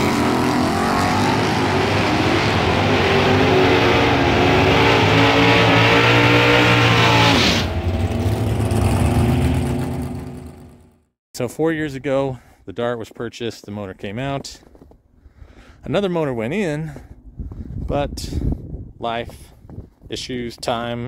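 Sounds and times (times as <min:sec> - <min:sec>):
race car engine at full throttle: 0:00.0 - 0:11.0.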